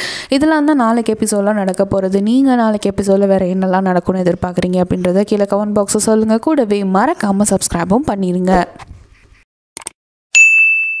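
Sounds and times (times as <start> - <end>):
notification bell ding: 10.4 - 11.0.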